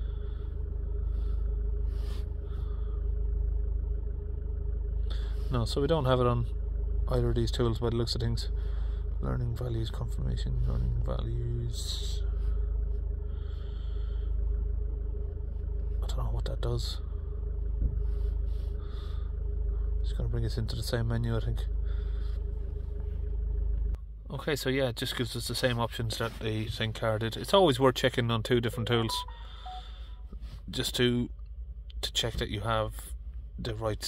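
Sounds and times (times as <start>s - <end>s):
steady hum: 0.0s - 24.7s, 25.3s - 32.2s
diesel car engine idling: 0.0s - 34.0s.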